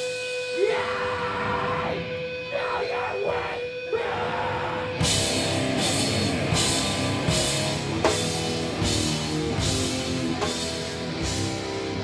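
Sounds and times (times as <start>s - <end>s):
distorted guitar: 0.0s - 12.0s
drums: 0.0s - 12.0s
sustained guitar note: 4.6s - 8.8s.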